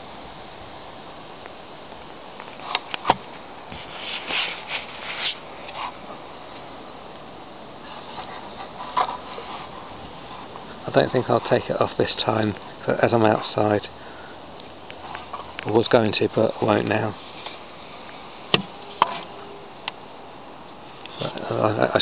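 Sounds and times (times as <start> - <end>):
outdoor hiss: 0.0 - 22.0.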